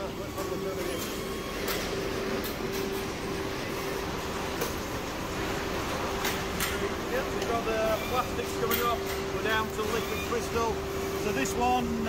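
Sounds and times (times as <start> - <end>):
machinery hum with constant tone: 0.0 - 12.0.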